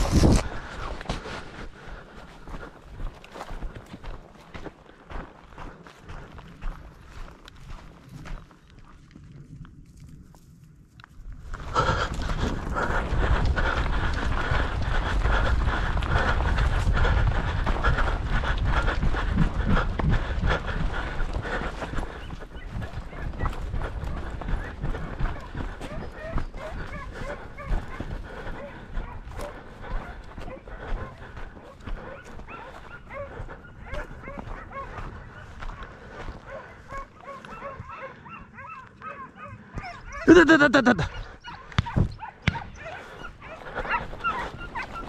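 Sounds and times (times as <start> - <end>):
boots crunching on stones: 0.0 - 1.6
brushing through dry brush: 0.0 - 1.6
footsteps through dry brush: 0.0 - 45.0
hunting dogs yelping and barking: 11.7 - 45.0.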